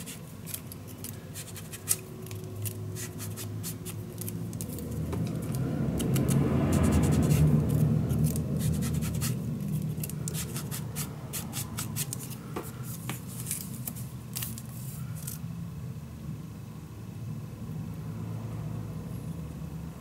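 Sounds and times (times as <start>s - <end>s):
paper clicks and rustles: 0.0s - 10.6s, 12.0s - 15.4s.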